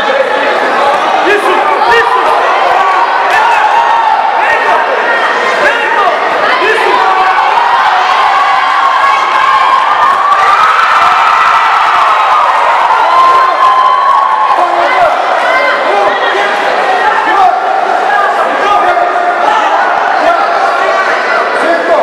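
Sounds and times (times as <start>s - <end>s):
crowd shouting and cheering: 0.0s - 22.0s.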